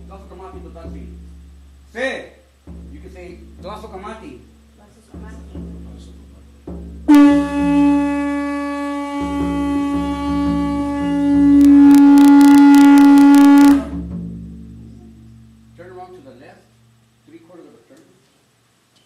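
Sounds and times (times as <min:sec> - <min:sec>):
conch shell trumpet held note: 0:07.1 - 0:14.0.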